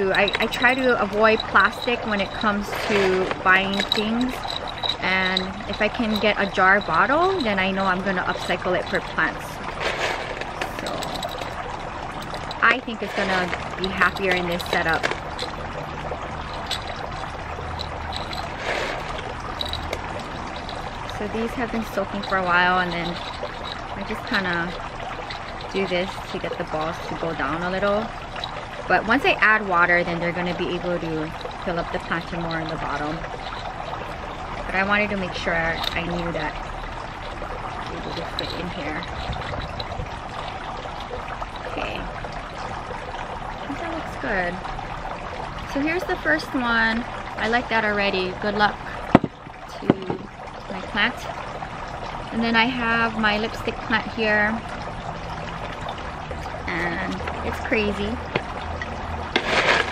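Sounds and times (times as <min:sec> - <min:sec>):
clay balls clicking against glass jar: 0:00.0 - 0:42.0, 0:49.0 - 0:50.3
water trickling: 0:00.0 - 0:59.9.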